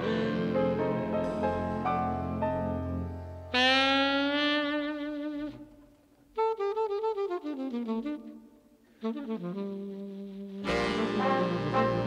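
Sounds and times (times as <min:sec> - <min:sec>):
alto saxophone playing: 0:03.5 - 0:12.0.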